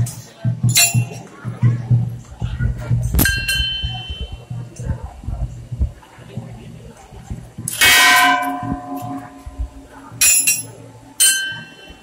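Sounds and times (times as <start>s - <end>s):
temple bell ringing: 7.8s - 9.5s, 10.2s - 12.0s.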